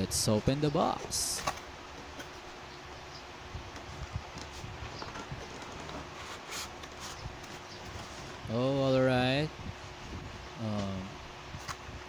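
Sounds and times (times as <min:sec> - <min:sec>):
cardboard box rustling and scraping: 0:04.4 - 0:08.4.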